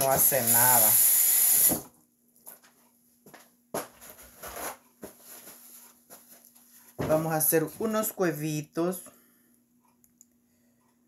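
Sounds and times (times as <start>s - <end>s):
low steady hum: 4.0s - 11.0s
paper towel rustling: 4.1s - 7.4s.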